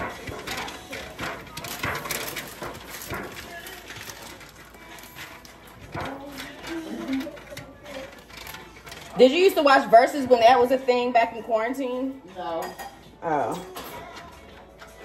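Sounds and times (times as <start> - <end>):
pastry brush scratching: 0.0 - 10.6
low background voices: 0.0 - 11.2
foil pan crinkling and scraping: 0.0 - 12.0.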